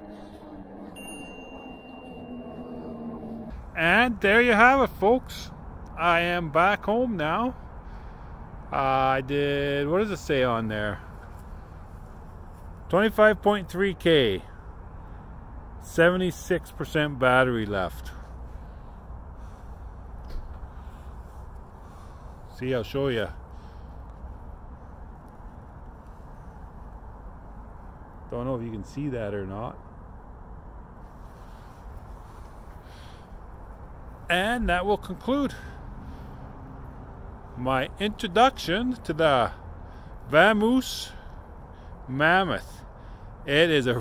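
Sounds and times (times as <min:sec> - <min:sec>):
high-pitched motor whine: 0:00.0 - 0:03.6
outdoor background rumble and hiss: 0:00.0 - 0:44.0.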